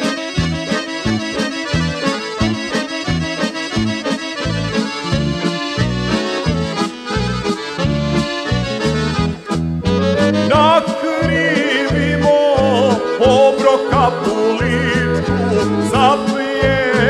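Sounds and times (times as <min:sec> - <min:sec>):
accordion melody: 0:00.0 - 0:17.0
pulsing bass beat: 0:00.4 - 0:17.0.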